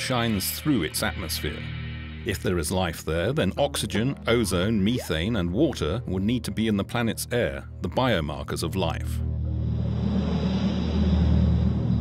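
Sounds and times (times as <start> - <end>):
low drone of held notes: 0.0 - 12.0
low rumbling with rushing swell: 0.3 - 2.9, 9.2 - 12.0.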